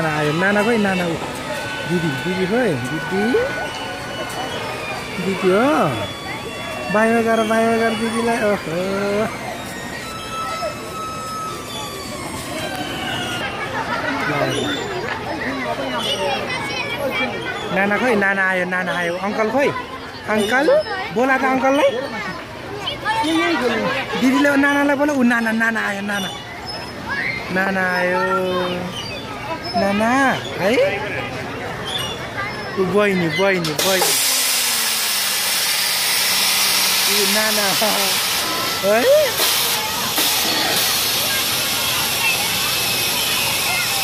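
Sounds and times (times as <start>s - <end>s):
voices chattering: 0.0s - 44.0s
compressed air hissing: 33.8s - 44.0s.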